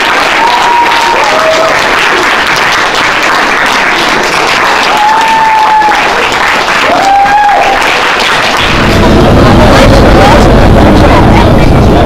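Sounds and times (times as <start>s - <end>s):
loud steady low rumble: 8.3s - 12.0s
people chatting: 8.7s - 12.0s.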